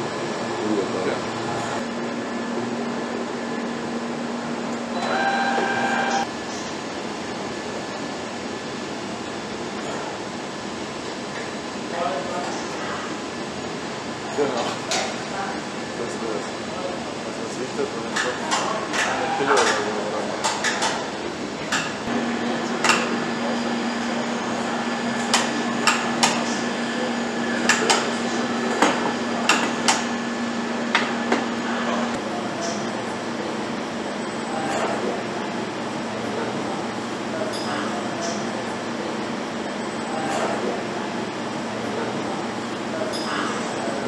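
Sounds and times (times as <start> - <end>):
machine whine: 0.0 - 7.8, 21.1 - 44.0
low machinery hum: 0.0 - 44.0.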